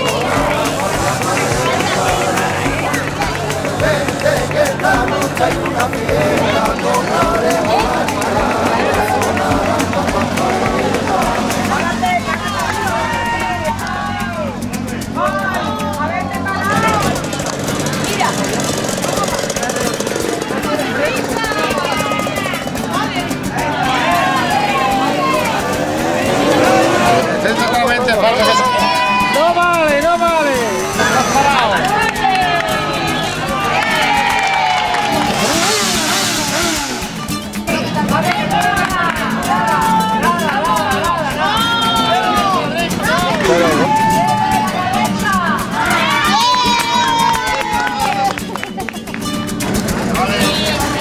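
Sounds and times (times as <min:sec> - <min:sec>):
crowd voices and shouts: 0:00.0 - 0:51.0
motorcycle engines running: 0:00.0 - 0:51.0
music: 0:00.0 - 0:51.0.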